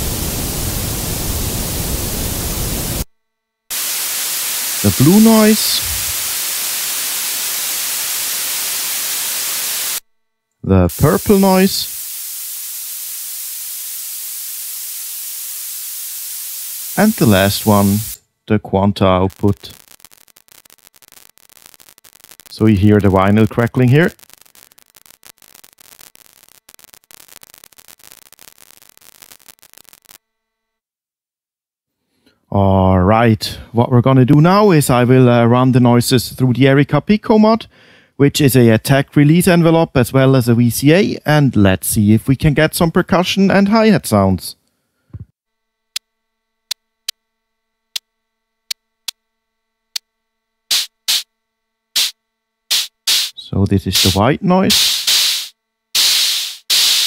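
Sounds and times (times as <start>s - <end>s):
white noise bursts: 0.0s - 3.1s, 3.7s - 10.0s, 10.7s - 18.2s, 18.8s - 30.2s, 50.7s - 51.3s, 52.0s - 57.0s
faint hum: 0.0s - 30.9s, 32.3s - 56.0s
dense irregular crackling: 18.9s - 30.2s.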